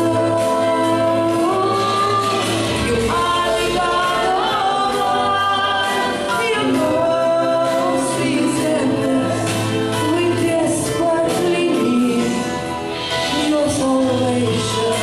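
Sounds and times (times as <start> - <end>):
group singing into microphones: 0.0 - 15.0
instrumental backing with bass: 0.0 - 15.0.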